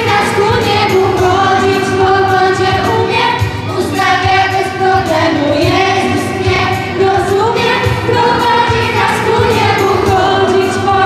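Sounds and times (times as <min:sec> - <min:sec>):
children's choir singing: 0:00.0 - 0:11.0
instrumental accompaniment: 0:00.0 - 0:11.0.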